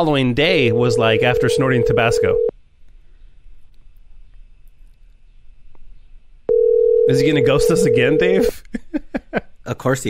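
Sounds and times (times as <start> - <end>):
telephone ringback tone: 0.7 - 2.5, 6.5 - 8.5.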